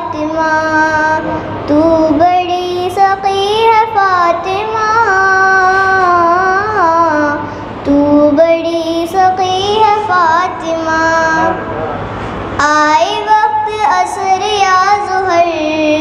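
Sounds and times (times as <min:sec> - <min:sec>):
girl singing into a microphone: 0:00.0 - 0:11.7, 0:12.5 - 0:16.0.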